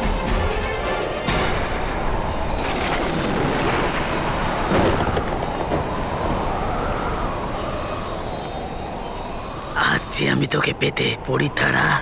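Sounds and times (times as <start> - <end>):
rumbling magic whoosh: 1.6 - 8.7.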